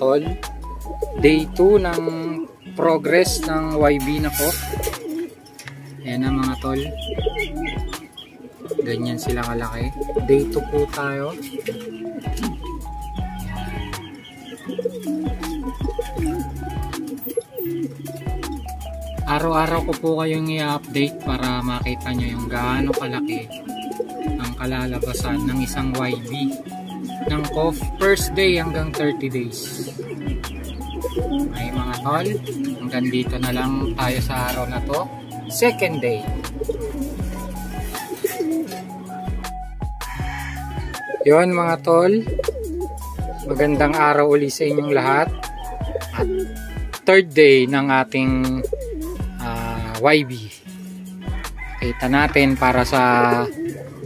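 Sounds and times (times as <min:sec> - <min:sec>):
background music with bass line: 0:00.0 - 0:54.0
pigeons cooing: 0:00.0 - 0:54.0.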